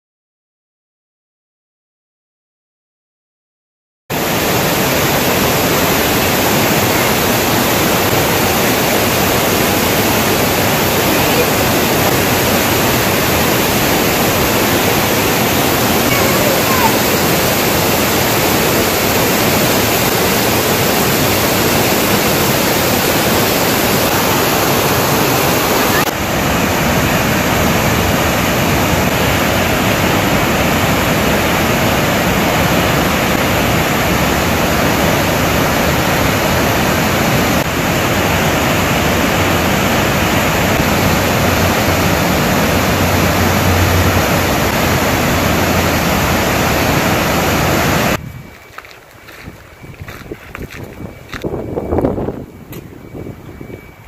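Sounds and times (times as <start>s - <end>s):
river rushing over rocks: 4.1s - 48.2s.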